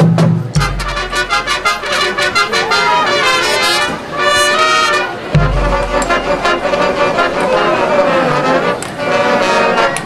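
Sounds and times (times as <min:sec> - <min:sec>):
sharp percussion stroke: 0:00.0 - 0:03.0, 0:05.2 - 0:07.6
marching percussion: 0:00.0 - 0:10.0
brass sustained chords: 0:00.6 - 0:09.9.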